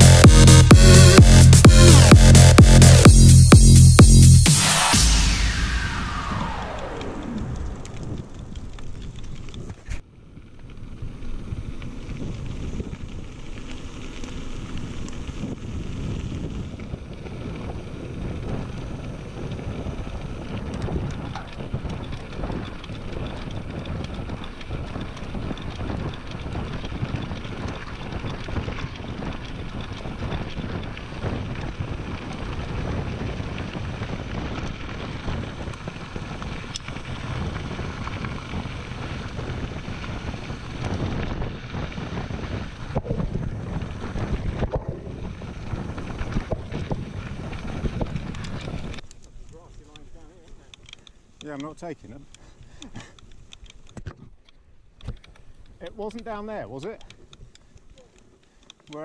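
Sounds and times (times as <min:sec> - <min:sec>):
bike tyres rolling over gravel: 0:04.8 - 0:59.0
wind on camera microphone: 0:14.6 - 0:50.6.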